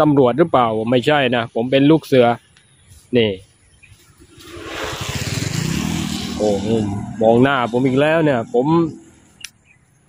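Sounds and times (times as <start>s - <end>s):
motorcycle engine hum: 2.4s - 10.0s.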